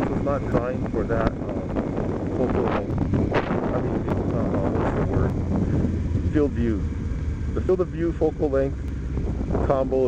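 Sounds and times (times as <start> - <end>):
low vehicle drone: 0.0 - 10.0
wind rushing over microphone: 0.0 - 10.0.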